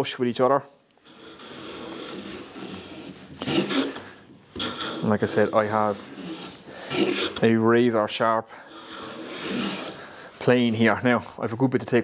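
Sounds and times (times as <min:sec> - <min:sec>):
hand plane shaving wood: 0:01.0 - 0:07.7, 0:08.6 - 0:10.9.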